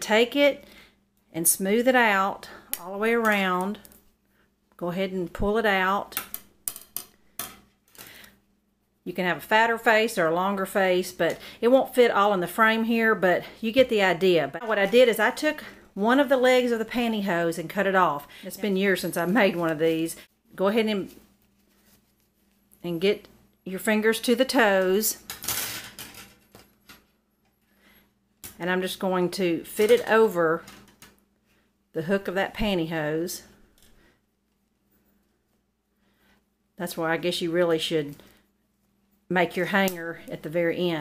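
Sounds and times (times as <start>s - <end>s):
fabric rustling on wire hanger: 18.6s - 22.8s.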